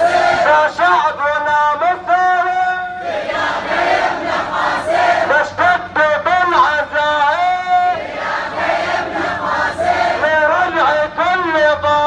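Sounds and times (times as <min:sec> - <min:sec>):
crowd chanting slogans: 0:00.0 - 0:00.8, 0:02.9 - 0:05.9, 0:07.5 - 0:10.8.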